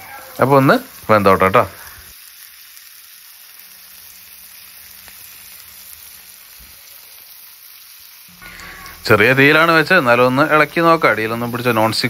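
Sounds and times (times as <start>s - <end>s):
fish sizzling in a pan: 0.0s - 12.0s.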